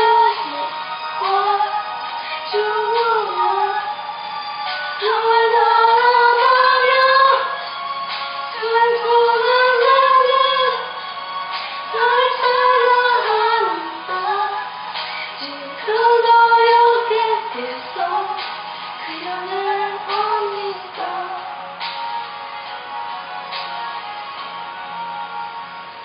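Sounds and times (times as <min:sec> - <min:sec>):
woman singing: 0:00.0 - 0:04.0, 0:04.9 - 0:07.8, 0:08.5 - 0:11.1, 0:11.8 - 0:21.7.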